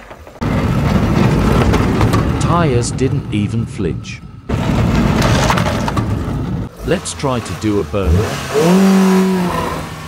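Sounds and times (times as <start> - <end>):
car engine and wheels rumbling: 0.0 - 10.0.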